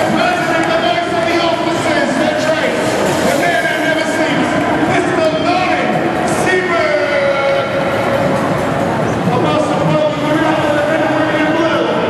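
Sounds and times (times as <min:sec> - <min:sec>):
crowd noise: 0:00.0 - 0:12.0
street noise: 0:00.0 - 0:12.0.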